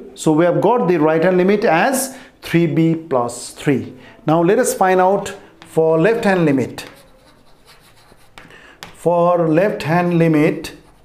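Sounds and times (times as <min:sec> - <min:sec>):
light chalk taps: 0:05.2 - 0:09.2
chalk writing on chalkboard: 0:05.2 - 0:11.0.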